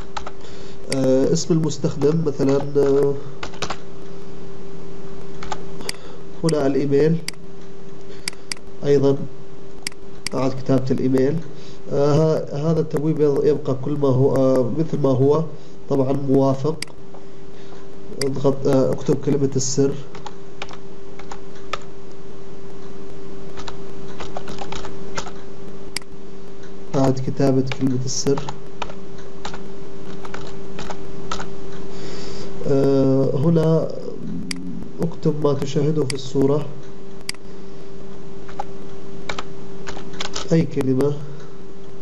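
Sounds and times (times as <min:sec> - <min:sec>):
computer keyboard keystrokes: 0:00.0 - 0:01.0, 0:02.0 - 0:03.8, 0:20.1 - 0:21.9, 0:23.6 - 0:25.4, 0:27.0 - 0:31.5, 0:39.3 - 0:40.5
steady low hum: 0:00.0 - 0:42.0.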